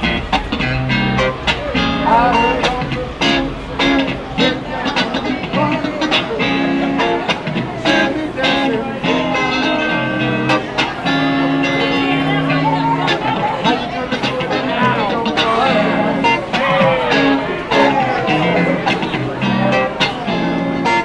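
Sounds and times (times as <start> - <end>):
crowd voices: 0.0 - 21.0
live guitar music with beat: 0.0 - 21.0.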